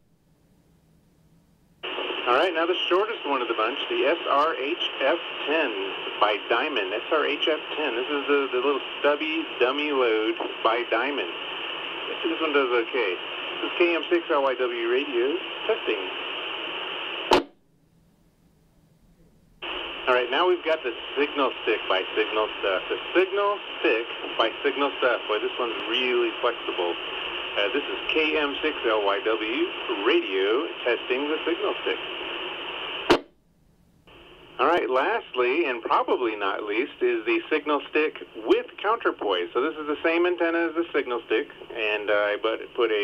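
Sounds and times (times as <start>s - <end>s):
radio squelch burst: 1.8s - 17.6s
radio static hiss: 1.8s - 17.6s, 19.2s - 33.3s, 34.0s - 43.0s.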